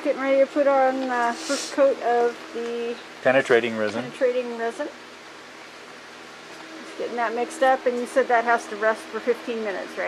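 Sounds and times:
room background hiss: 0.0 - 10.0.

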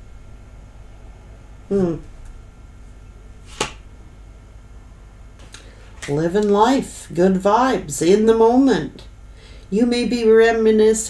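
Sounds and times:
faint room hum: 0.0 - 11.0
card snapped against deck: 3.5 - 3.8.

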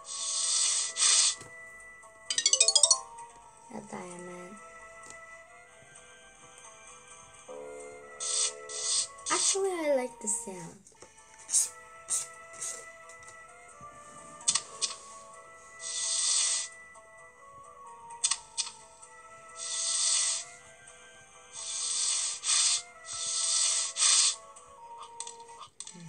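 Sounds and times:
soft background music: 0.0 - 26.0.

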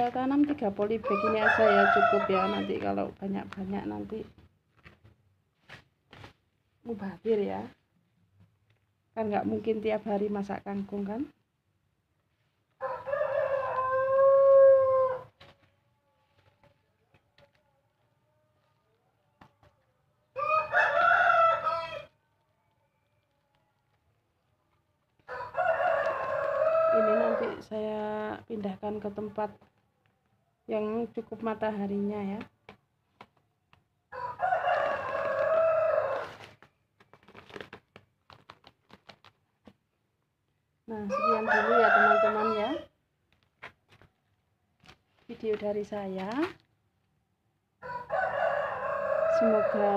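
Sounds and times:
rooster crowing: 1.0 - 2.8, 12.8 - 15.6, 20.3 - 23.5, 25.2 - 27.7, 34.1 - 36.5, 41.1 - 42.9, 47.8 - 49.9
rustling of plastic bags: 15.3 - 19.8, 34.8 - 39.9, 43.2 - 47.2.

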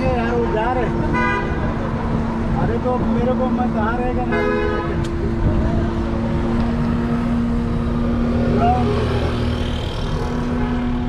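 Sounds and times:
car engine rumble: 0.0 - 11.0
street traffic: 0.0 - 11.0.

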